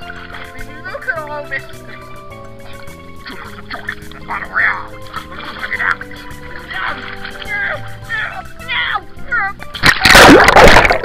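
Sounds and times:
pool water splashing: 0:00.0 - 0:08.9, 0:09.7 - 0:11.0.

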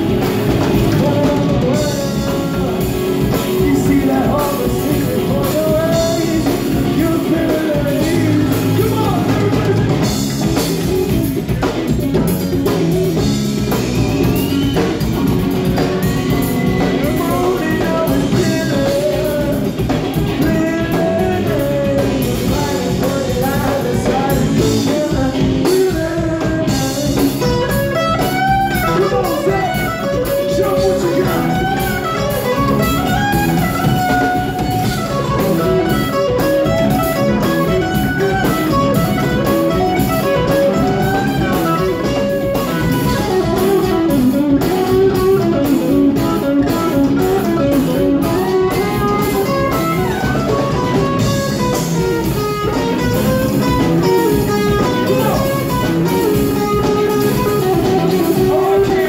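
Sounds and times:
bass guitar: 0:00.0 - 0:59.0
drum kit: 0:00.0 - 0:59.0
electric guitars: 0:00.0 - 0:59.0.

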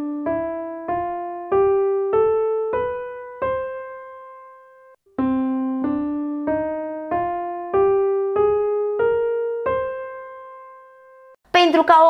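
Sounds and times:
piano scale on keyboard: 0:00.0 - 0:11.4.

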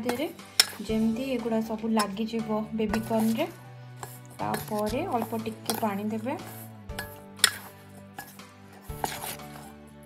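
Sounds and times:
metal spoon scraping in a bowl: 0:00.0 - 0:09.9.

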